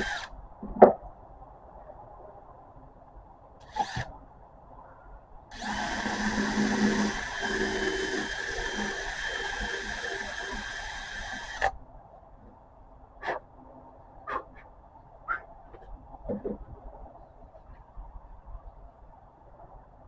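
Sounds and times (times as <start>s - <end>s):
cordless drill boring through wood: 0.0s - 0.3s, 3.6s - 4.1s, 5.5s - 11.7s.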